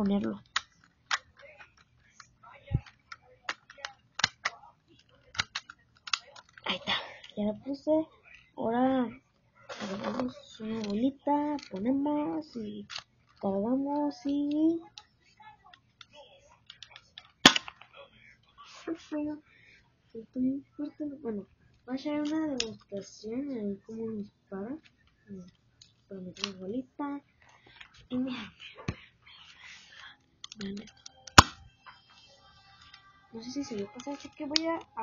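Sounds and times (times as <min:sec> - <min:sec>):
toy pistol plastic clicks and knocks: 0:00.0 - 0:06.6, 0:10.0 - 0:11.9, 0:12.8 - 0:13.4, 0:16.7 - 0:17.9, 0:25.8 - 0:26.6, 0:30.4 - 0:31.7.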